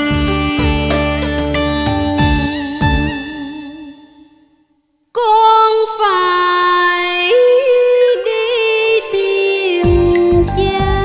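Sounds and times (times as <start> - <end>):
woman singing a ballad melody: 0.0 - 4.5, 5.2 - 11.0.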